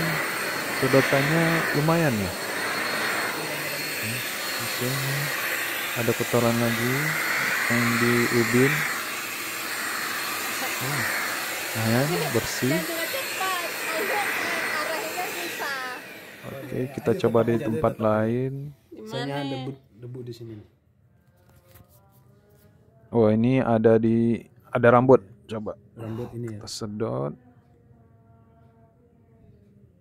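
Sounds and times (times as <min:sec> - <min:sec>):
vacuum nozzle sweeping over tile: 0:00.0 - 0:18.2
stick vacuum cleaner running: 0:00.0 - 0:18.4.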